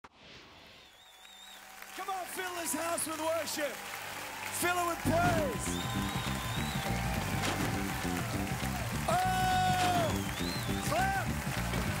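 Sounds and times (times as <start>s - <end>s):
live band playing: 5.1s - 12.0s.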